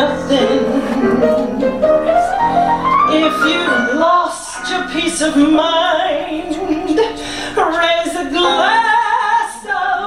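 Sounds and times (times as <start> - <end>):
woman singing: 0.0 - 2.3, 3.1 - 10.0.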